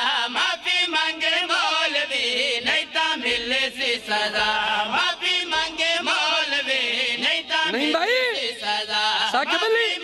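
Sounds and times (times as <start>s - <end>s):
man chanting devotional verse: 0.0s - 10.0s.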